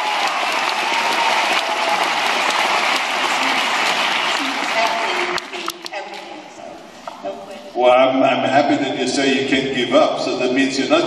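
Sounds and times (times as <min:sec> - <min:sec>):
audience applauding: 0:00.0 - 0:06.2
voices: 0:03.0 - 0:11.0.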